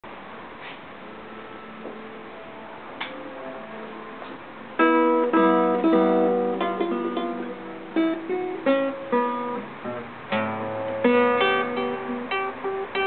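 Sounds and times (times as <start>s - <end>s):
acoustic guitar chords: 1.3s - 13.0s.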